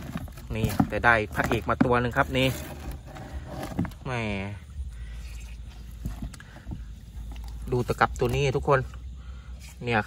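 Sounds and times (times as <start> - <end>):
fish handled in plastic bin: 0.0 - 10.0.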